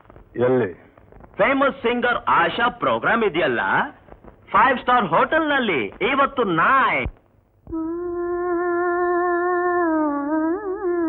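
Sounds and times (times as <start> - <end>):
woman singing long note: 7.7 - 11.0.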